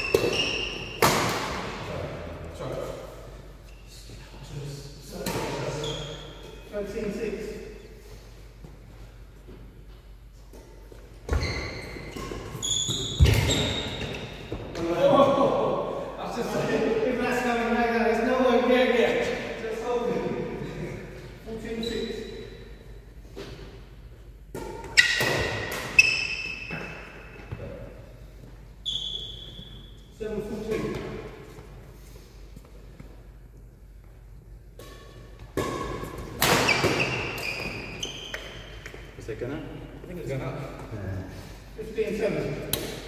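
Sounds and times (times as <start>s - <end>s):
shoe squeaks: 0.0s - 1.1s, 3.6s - 4.1s, 5.7s - 6.7s, 11.3s - 14.6s, 21.7s - 22.8s, 24.9s - 27.5s, 28.8s - 30.1s, 36.6s - 39.2s
racket hitting shuttlecock: 0.0s - 1.7s, 24.5s - 26.8s, 34.7s - 39.0s.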